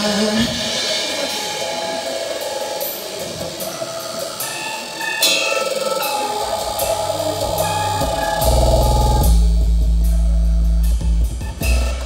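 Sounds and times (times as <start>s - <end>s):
hi-hat and cymbals: 0.0s - 12.0s
live band instrumental music: 0.0s - 12.0s
low bass line: 6.5s - 12.0s.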